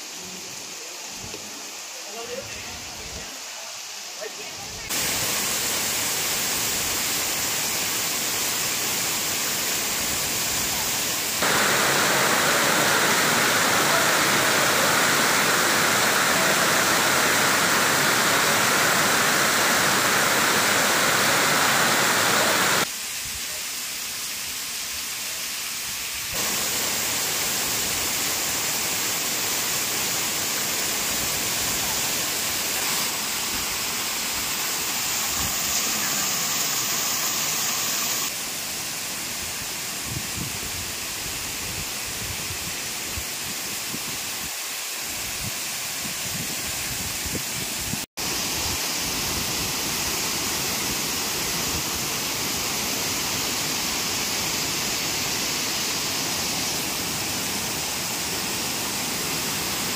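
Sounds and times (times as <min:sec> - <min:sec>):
waterfall rushing over rocks: 0:00.0 - 0:59.9.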